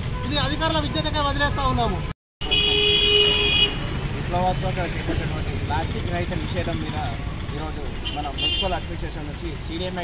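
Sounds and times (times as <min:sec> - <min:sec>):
vehicle horn honking: 0:02.4 - 0:03.9, 0:08.0 - 0:08.9.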